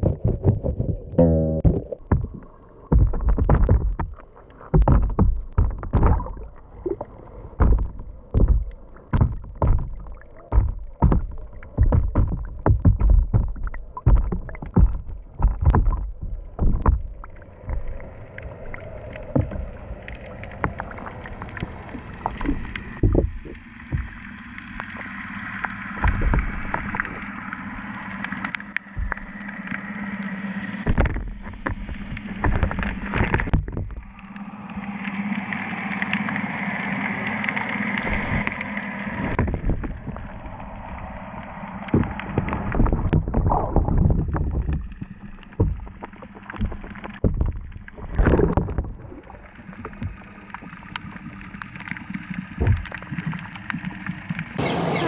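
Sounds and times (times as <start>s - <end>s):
knocks and bumps: 0.0s - 6.4s, 7.6s - 17.1s
muffled underwater water sloshing: 0.0s - 55.0s.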